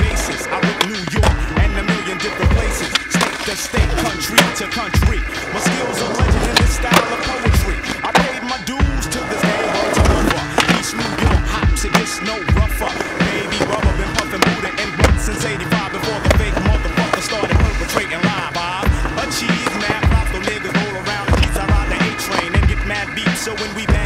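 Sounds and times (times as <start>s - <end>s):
hip-hop music: 0.0s - 24.0s
skateboard clacks: 0.0s - 24.0s
skateboard wheels rolling on concrete: 0.0s - 24.0s.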